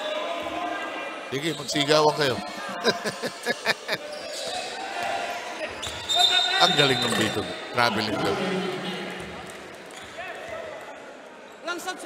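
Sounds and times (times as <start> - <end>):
crowd voices in large hall: 0.0 - 12.0
referee's whistle: 5.8 - 7.6.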